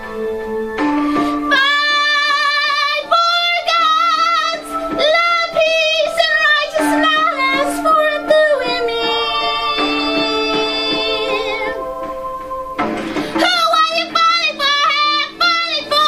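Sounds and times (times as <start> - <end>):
woman singing with vibrato: 1.2 - 12.2, 13.2 - 16.0
held keyboard note: 4.0 - 15.0.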